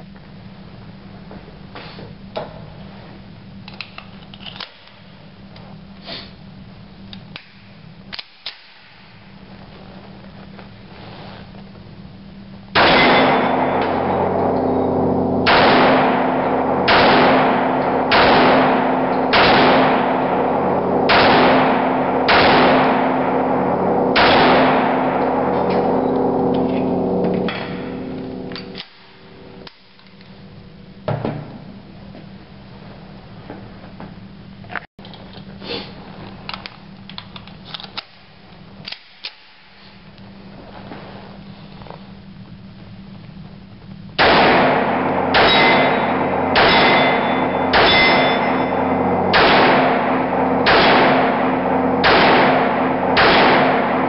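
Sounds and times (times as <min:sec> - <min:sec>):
pistol shots echoing indoors: 0:12.7 - 0:29.9, 0:44.2 - 0:54.0.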